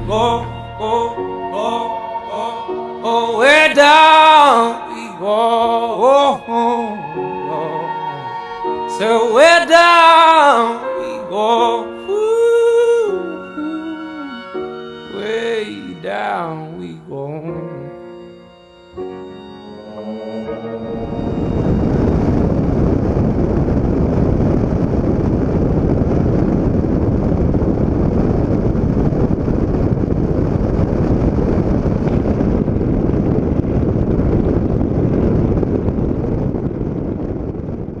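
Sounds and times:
wind rushing: 0:18.9 - 0:38.0.

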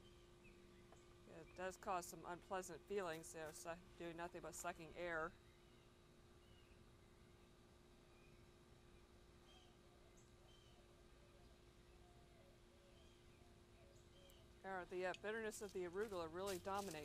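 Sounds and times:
faint bird chirps: 0:05.3 - 0:14.6.

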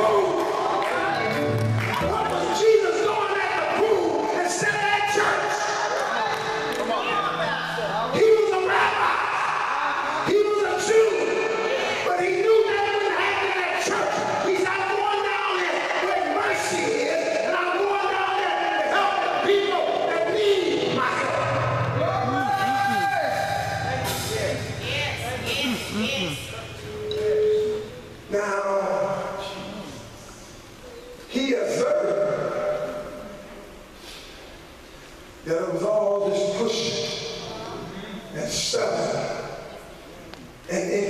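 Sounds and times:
man preaching into microphone: 0:00.0 - 0:00.8, 0:02.0 - 0:06.7, 0:08.0 - 0:30.2, 0:31.3 - 0:33.5, 0:35.4 - 0:39.7, 0:40.6 - 0:41.0
church band playing quietly: 0:00.0 - 0:34.0
held keyboard chords: 0:20.7 - 0:28.4
low sustained bass note: 0:23.4 - 0:28.1.

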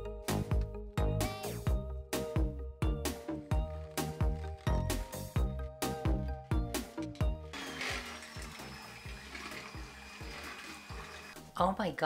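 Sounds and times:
background music with beat: 0:00.0 - 0:07.6
electric hand mixer whirring: 0:07.5 - 0:11.4.

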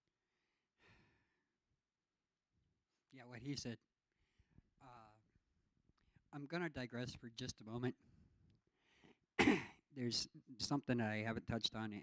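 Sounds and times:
faint breath near microphone: 0:00.4 - 0:01.4, 0:04.1 - 0:04.7, 0:08.1 - 0:09.2.

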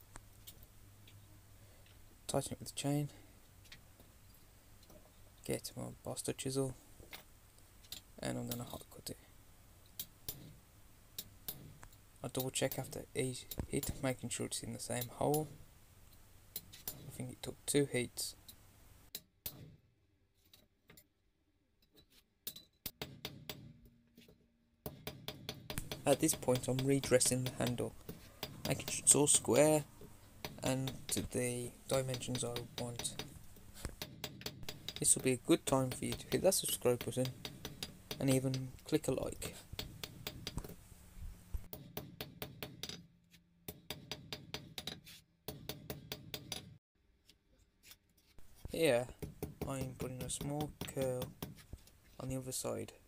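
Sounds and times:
hammer striking chisel on steel: 0:24.9 - 0:40.7, 0:41.7 - 0:43.1, 0:43.7 - 0:46.8, 0:49.1 - 0:51.6.

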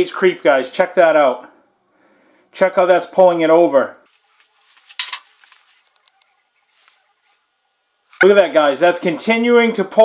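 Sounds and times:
faint ticks and crackles: 0:05.4 - 0:08.3.

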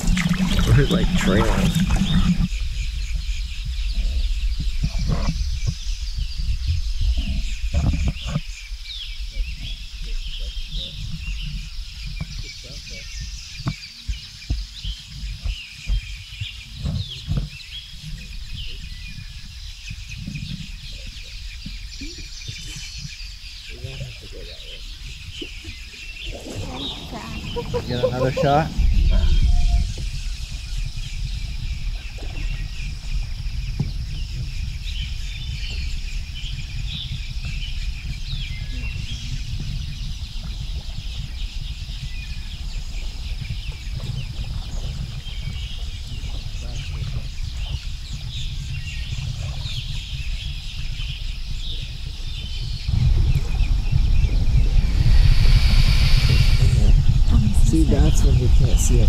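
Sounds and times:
bird chirps: 0:00.0 - 0:59.0
high insect hum: 0:00.0 - 0:59.0
wind rumbling on microphone: 0:00.0 - 0:59.0.

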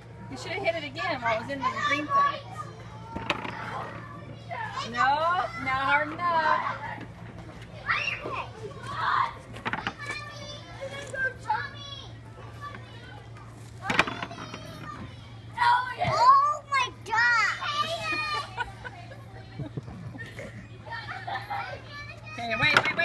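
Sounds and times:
young children chattering: 0:00.0 - 0:23.0.

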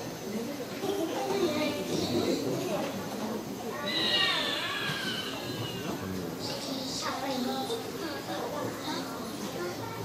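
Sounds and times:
girl speaking into a microphone: 0:00.8 - 0:03.0, 0:06.4 - 0:10.0.

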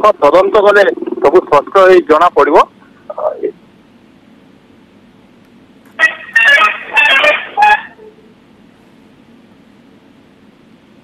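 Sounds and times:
garbled beeping over telephone line: 0:06.0 - 0:08.1.

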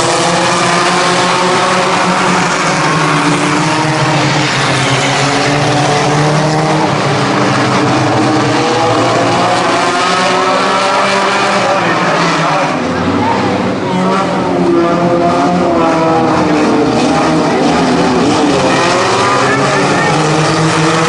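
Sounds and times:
race car engines running hard: 0:00.0 - 0:21.0.

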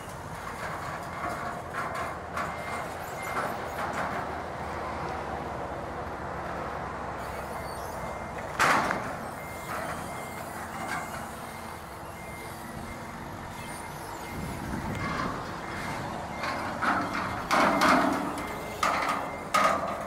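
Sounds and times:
forklift engine running: 0:00.0 - 0:20.0
forklift reversing alarm beeping: 0:01.4 - 0:03.9, 0:07.2 - 0:20.0.

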